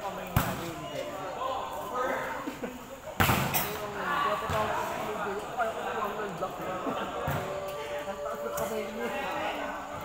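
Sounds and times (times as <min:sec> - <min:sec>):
volleyball struck by hand: 0:03.2 - 0:03.7.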